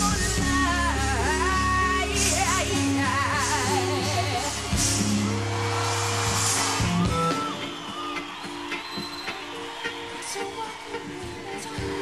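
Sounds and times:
woman singing into microphone: 0.0s - 4.7s, 10.0s - 12.0s
full band with bass: 0.0s - 12.0s.

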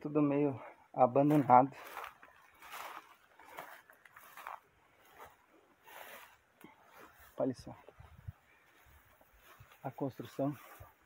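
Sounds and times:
grass swishing underfoot: 1.1s - 11.0s.

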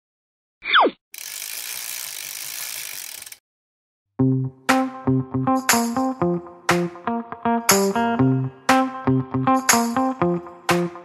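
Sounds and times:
mechanical ratcheting: 1.2s - 3.4s.

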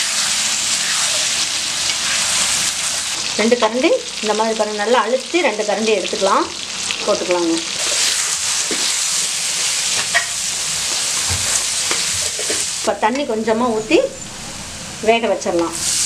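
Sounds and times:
vegetables sizzling in oil: 0.0s - 14.2s, 15.6s - 16.0s.

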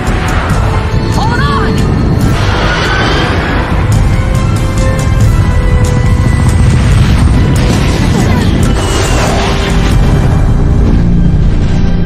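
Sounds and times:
deep rumble: 0.0s - 12.0s
dramatic film score: 0.0s - 12.0s
explosion booms: 2.2s - 4.3s.

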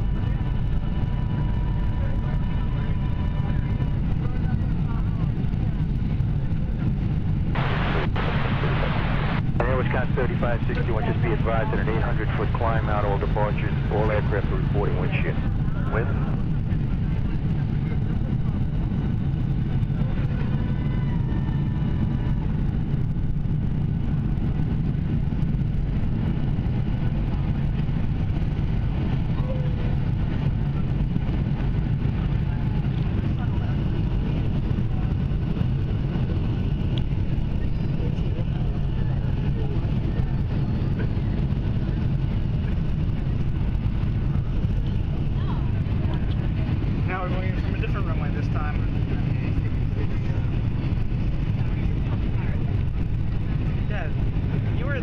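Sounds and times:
airplane cabin roar: 0.0s - 55.0s.

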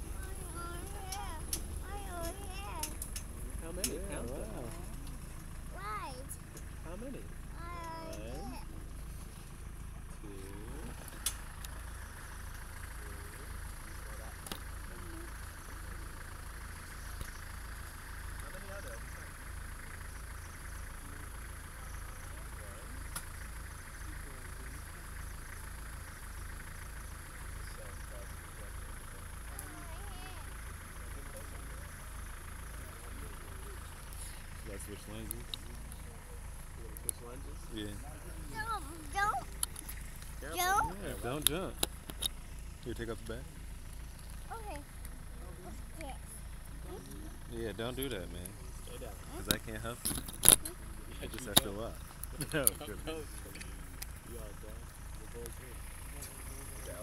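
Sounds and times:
vehicle engine idling: 0.0s - 57.0s.

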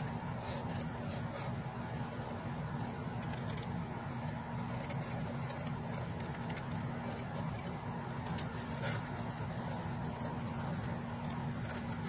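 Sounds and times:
marker scratching on paper: 0.0s - 3.0s, 4.2s - 12.0s
steady low hum: 0.0s - 12.0s.

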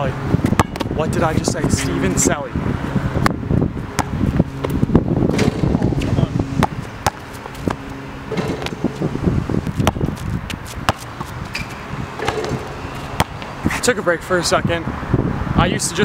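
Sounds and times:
steady low hum: 0.0s - 15.6s
basketball bouncing on hard court: 0.5s - 0.9s, 6.6s - 9.0s, 9.6s - 13.6s
sneaker footsteps: 5.7s - 13.8s.

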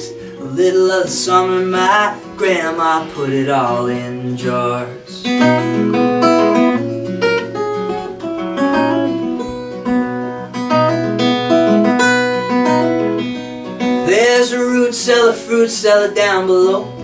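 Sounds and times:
acoustic guitar playing: 0.0s - 17.0s.

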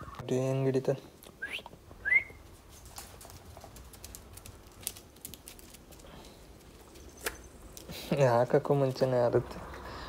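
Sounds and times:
person whistling: 1.4s - 2.4s.

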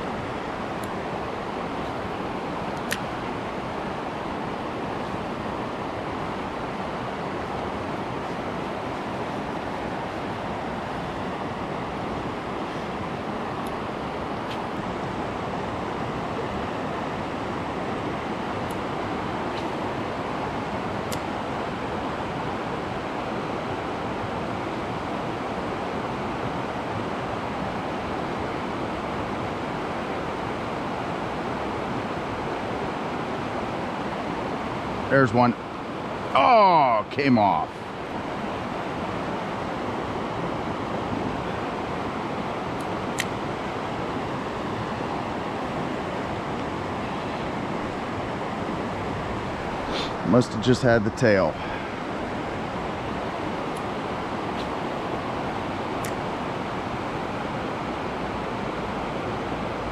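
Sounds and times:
stream pouring over weir: 0.0s - 59.9s.

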